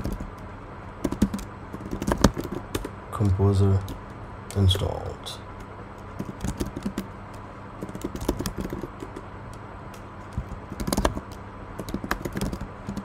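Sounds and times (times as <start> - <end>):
typing on computer keyboard: 0.0 - 0.4, 1.0 - 2.9, 6.2 - 7.1, 7.8 - 9.2, 10.3 - 13.0
faint low hum: 0.0 - 13.0.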